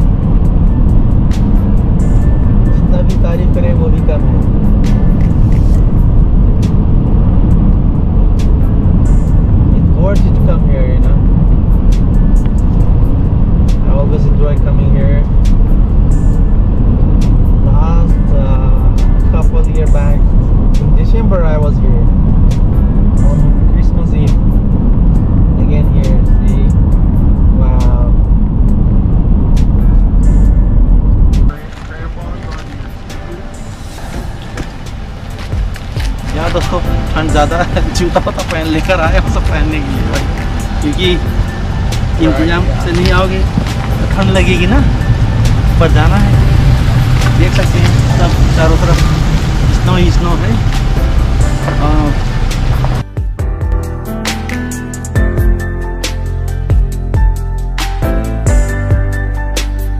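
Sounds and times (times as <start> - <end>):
car interior road rumble: 0.0 - 53.9.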